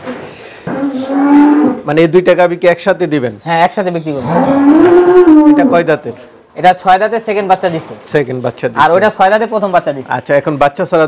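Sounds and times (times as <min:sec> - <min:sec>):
cows mooing: 0:00.7 - 0:01.9, 0:04.2 - 0:05.8.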